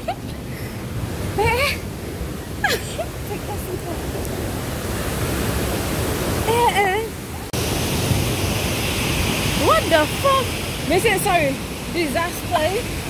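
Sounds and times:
rushing river water: 0.0s - 13.0s.

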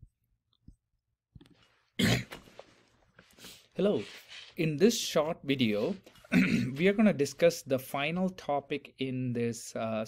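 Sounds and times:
person coughing: 2.0s - 2.4s, 6.3s - 6.8s.

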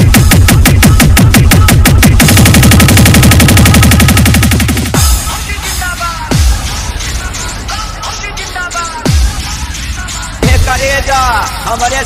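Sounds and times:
electronic drum roll with bass: 0.0s - 7.2s.

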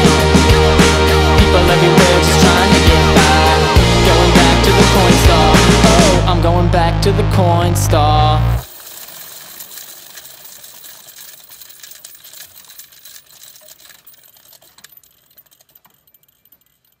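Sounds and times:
faint crackling and clicking: 8.7s - 17.0s.

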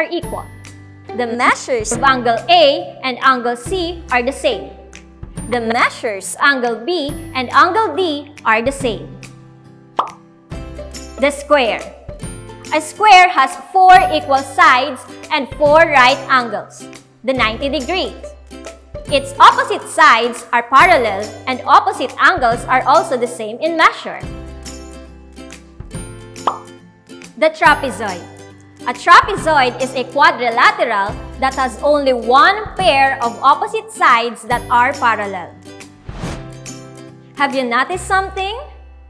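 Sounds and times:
background music: 0.0s - 39.0s
rising plop sound effect: 10.0s - 10.2s, 26.4s - 26.8s.

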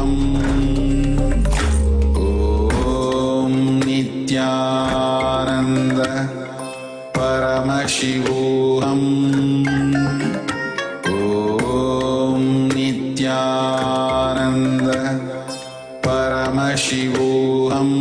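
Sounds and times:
mantra chanted to music: 0.0s - 18.0s.

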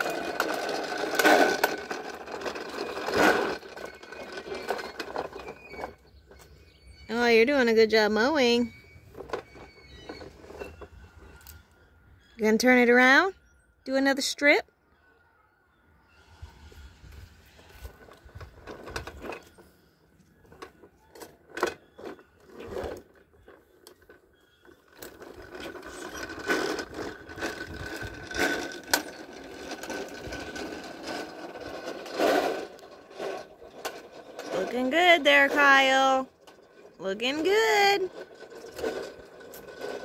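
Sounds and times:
toy lawn mower clicking and rattling: 0.0s - 6.6s, 9.1s - 11.6s, 17.5s - 40.0s.

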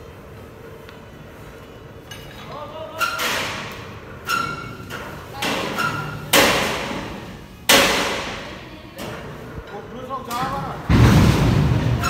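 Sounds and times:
heavy blows: 10.8s - 12.0s.

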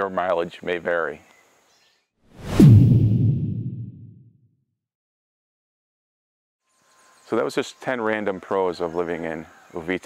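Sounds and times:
transition whoosh: 2.3s - 4.4s.

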